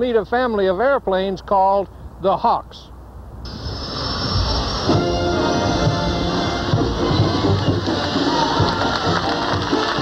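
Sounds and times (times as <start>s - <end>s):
jet engine hiss: 3.5s - 6.7s
music: 3.5s - 10.0s.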